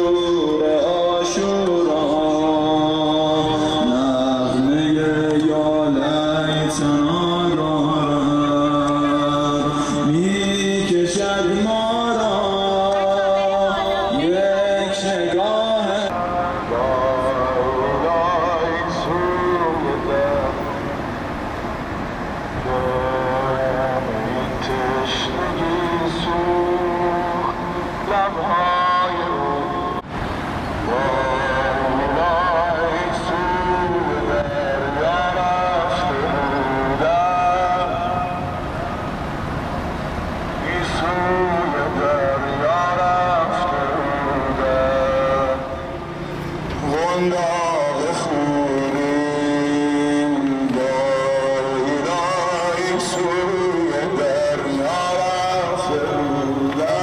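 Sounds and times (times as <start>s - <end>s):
man chanting: 0.0s - 21.0s, 22.6s - 30.0s, 30.8s - 38.6s, 40.6s - 57.0s
marching crowd noise: 0.0s - 57.0s
street procession hum: 0.0s - 57.0s.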